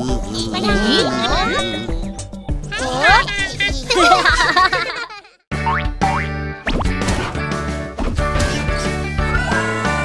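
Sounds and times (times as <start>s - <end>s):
cartoon voices laughing: 0.2s - 5.4s.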